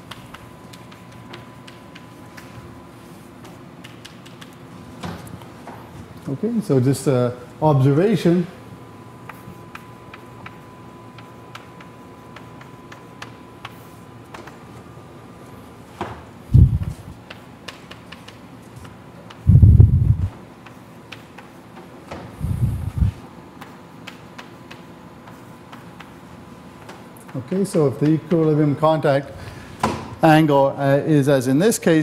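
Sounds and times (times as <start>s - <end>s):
chalk writing on blackboard: 0.0s - 4.6s, 9.2s - 14.6s, 16.8s - 19.4s, 20.4s - 21.8s, 23.1s - 27.5s
dull low thumps: 16.5s - 17.0s, 19.5s - 20.3s.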